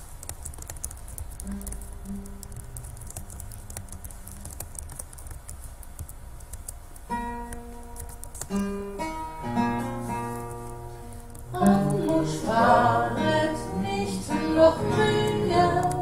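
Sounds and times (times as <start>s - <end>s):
acoustic guitar played softly: 1.4s - 3.1s, 7.0s - 16.0s.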